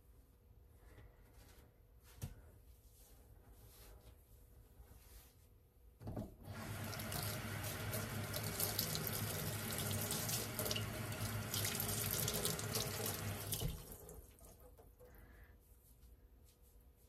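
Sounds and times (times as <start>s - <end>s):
tap running into metal sink: 11.5s - 13.9s.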